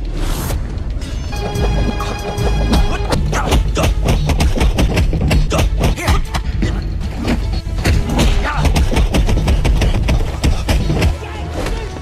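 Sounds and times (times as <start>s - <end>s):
heavy rumbling low soundtrack: 0.0s - 12.0s.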